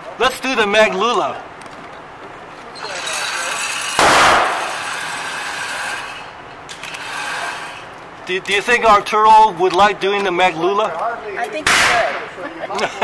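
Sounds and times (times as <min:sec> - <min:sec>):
gunshot: 0:04.0 - 0:04.8, 0:11.7 - 0:12.2.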